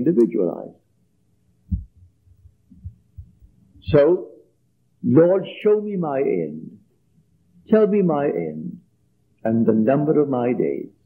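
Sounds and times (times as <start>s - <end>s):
faint steady hum: 0.0s - 11.0s
low dull thumps: 1.7s - 4.0s.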